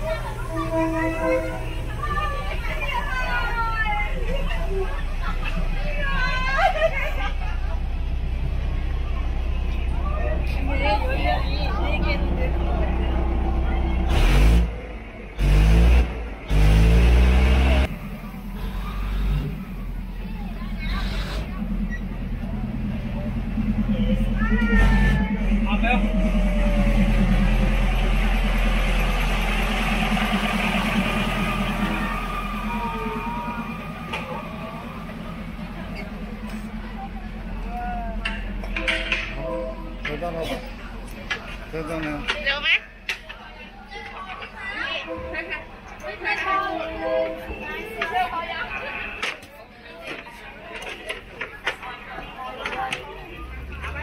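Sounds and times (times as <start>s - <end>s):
diesel train rumbling past: 0.0s - 50.6s
crowd voices: 0.0s - 54.0s.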